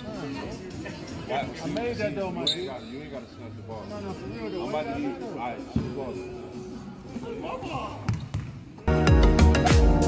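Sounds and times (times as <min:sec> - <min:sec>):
basketball bouncing on court: 0:08.1 - 0:08.6
music with beat and deep bass: 0:08.9 - 0:10.0.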